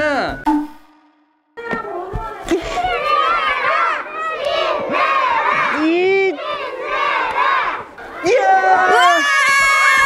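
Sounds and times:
children shouting and cheering: 1.6s - 10.0s.

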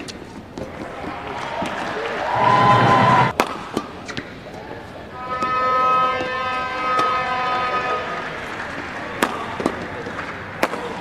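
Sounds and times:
racket hitting shuttlecock: 0.0s - 2.1s, 3.3s - 11.0s
steady horn-like tone: 5.1s - 9.2s.

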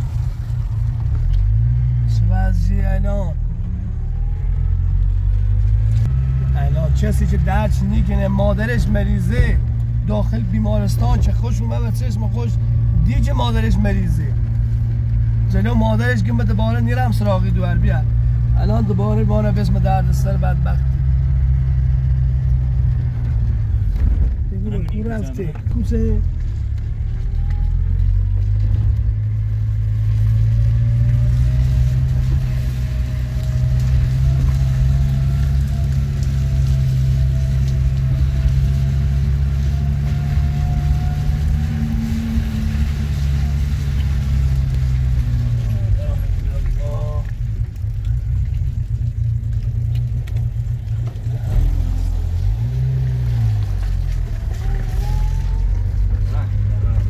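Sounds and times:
car engine drone: 0.0s - 57.0s
road and tyre noise: 0.0s - 57.0s.

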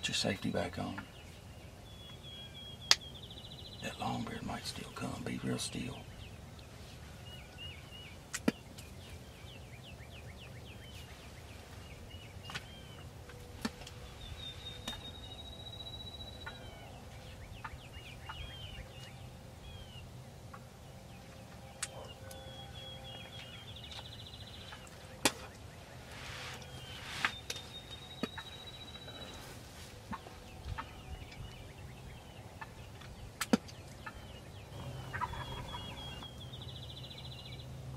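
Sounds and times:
turkeys calling and gobbling: 16.2s - 31.6s, 32.3s - 36.7s.

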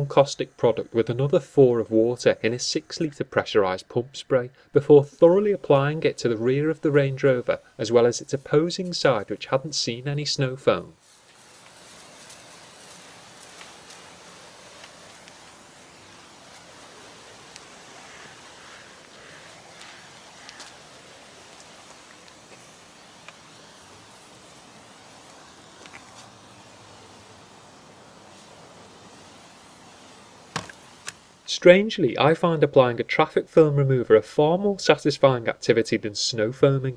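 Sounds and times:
sprayer hiss: 0.0s - 33.2s.

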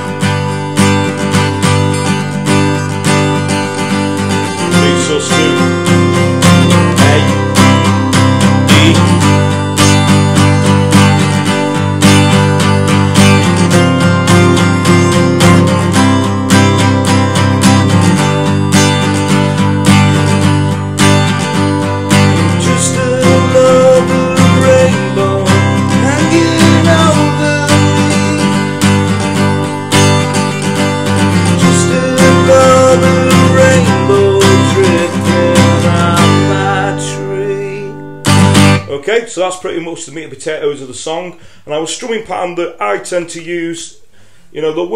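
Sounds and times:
acoustic guitar strumming: 0.0s - 40.0s.

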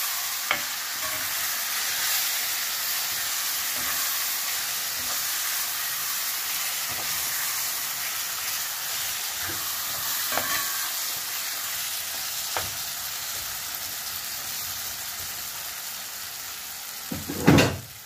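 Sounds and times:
kidneys sizzling in hot oil: 0.0s - 18.0s.

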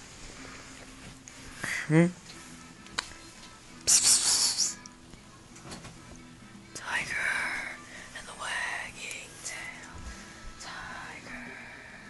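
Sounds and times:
person whispering: 3.9s - 4.8s, 6.8s - 10.0s, 10.6s - 11.9s.

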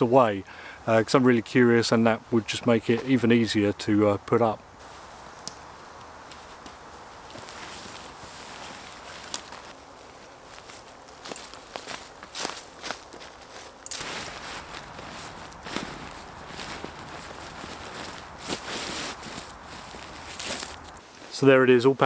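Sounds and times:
dry leaves crunching underfoot: 6.2s - 21.3s
nylon fabric rustling: 6.3s - 21.4s.

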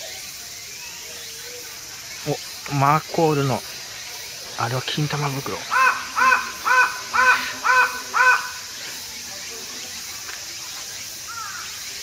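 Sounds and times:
bird calling: 0.7s - 12.0s.

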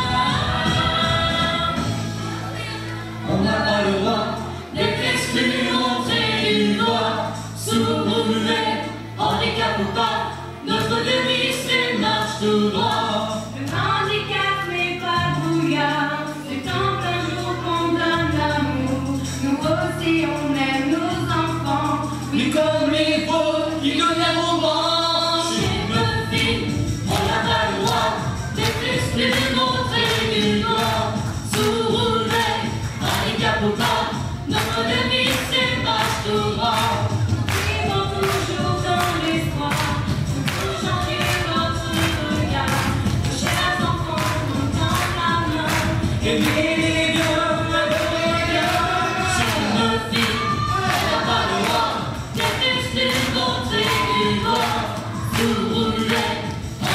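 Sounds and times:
choir singing: 0.0s - 18.0s, 22.4s - 56.9s
accompaniment with steady beat: 25.6s - 56.9s.

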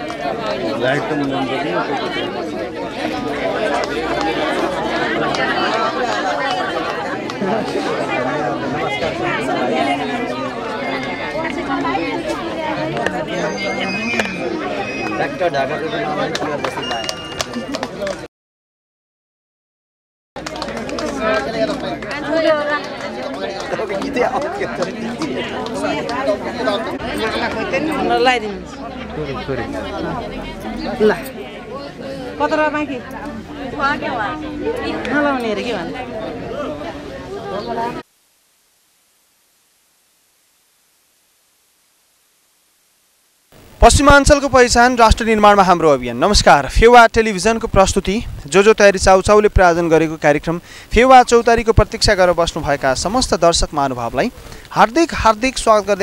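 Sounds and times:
crowd chatter: 0.0s - 18.3s, 20.4s - 38.1s, 43.5s - 56.0s.

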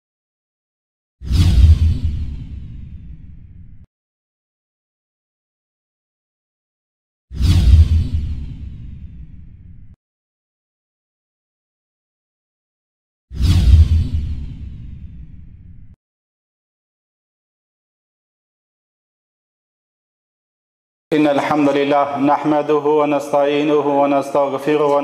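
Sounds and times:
whoosh: 1.2s - 3.8s, 7.3s - 9.9s, 13.4s - 15.7s.

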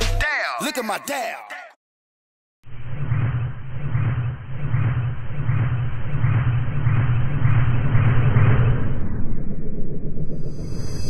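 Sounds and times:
rumbling drone with low hum: 2.6s - 11.0s.

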